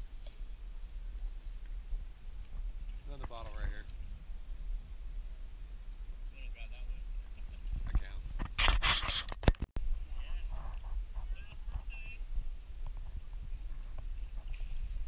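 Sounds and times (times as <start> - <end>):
low microphone rumble: 0.0 - 8.5, 9.8 - 15.0.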